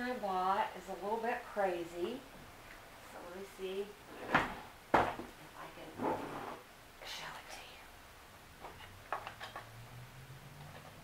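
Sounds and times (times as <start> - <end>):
soft whispered voice: 7.0 - 8.0.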